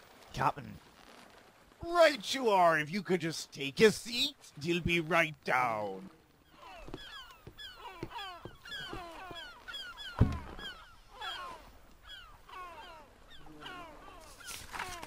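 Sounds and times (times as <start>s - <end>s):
seagull cries: 6.4s - 15.0s
thump on wooden crate: 10.2s - 10.6s.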